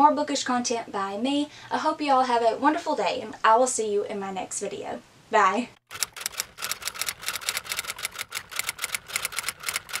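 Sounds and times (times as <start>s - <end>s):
keyboard typing clicks: 5.9s - 10.0s.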